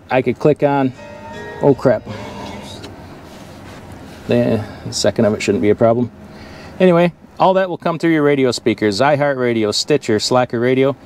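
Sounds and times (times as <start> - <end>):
truck cab background noise: 0.0 - 11.0.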